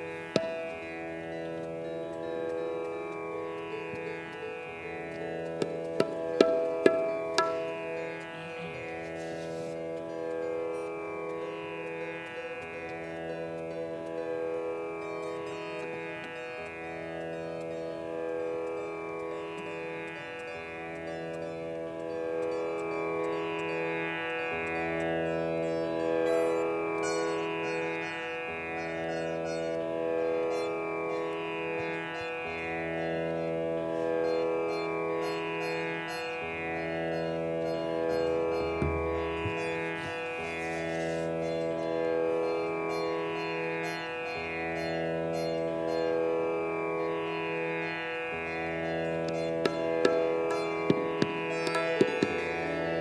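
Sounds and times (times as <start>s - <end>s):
sitar melody over drone: 0.0s - 53.0s.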